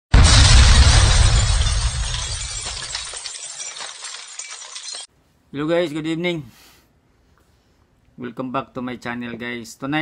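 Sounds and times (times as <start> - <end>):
loud blast with deep rumble: 0.1 - 2.5
glass shattering: 0.2 - 5.1.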